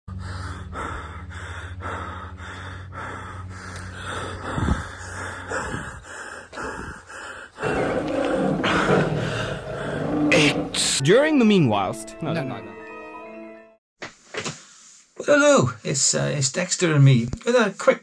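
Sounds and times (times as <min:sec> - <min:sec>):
person panting heavily: 0:00.1 - 0:10.7
man's rough voice: 0:10.3 - 0:12.0.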